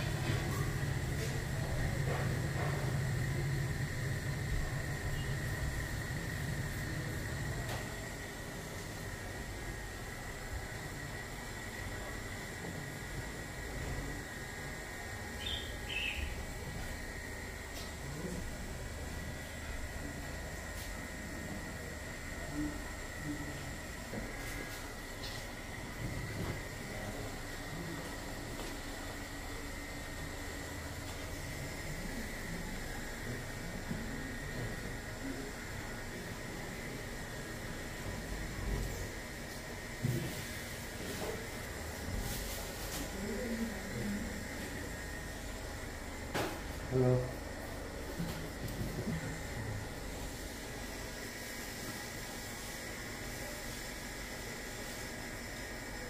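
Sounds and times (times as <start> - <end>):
high-pitched whine: 0.0 - 9.0.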